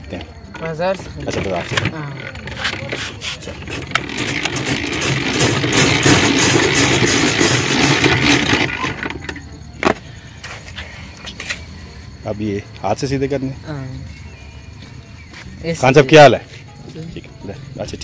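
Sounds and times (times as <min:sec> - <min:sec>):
ice shaver grinding ice: 0:02.4 - 0:09.4.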